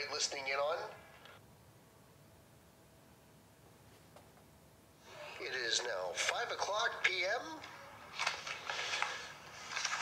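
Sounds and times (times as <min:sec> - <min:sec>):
paper flyers rustling and crinkling: 0:08.1 - 0:10.0.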